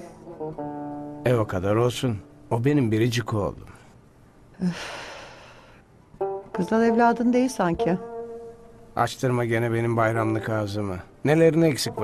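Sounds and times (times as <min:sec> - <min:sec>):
woman sighing: 0:04.6 - 0:05.8.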